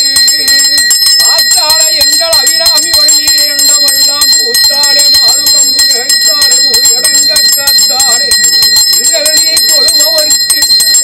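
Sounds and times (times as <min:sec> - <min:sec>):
hand bell rung rapidly: 0:00.0 - 0:11.0
voices: 0:00.0 - 0:11.0.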